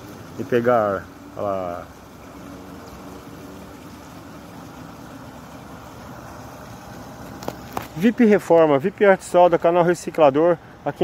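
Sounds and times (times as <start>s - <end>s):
river water rushing: 0.0s - 11.0s.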